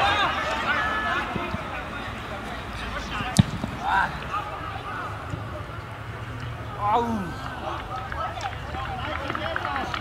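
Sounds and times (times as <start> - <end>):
distant shout: 0.0 - 2.2, 2.8 - 5.6
football being kicked: 3.3 - 3.8.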